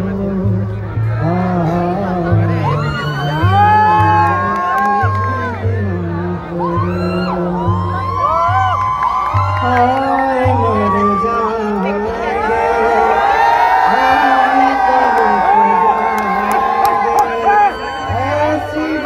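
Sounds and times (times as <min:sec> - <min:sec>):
man singing into a microphone: 0:00.0 - 0:08.6, 0:09.4 - 0:19.0
audience whooping and cheering: 0:02.6 - 0:05.6, 0:06.6 - 0:19.0.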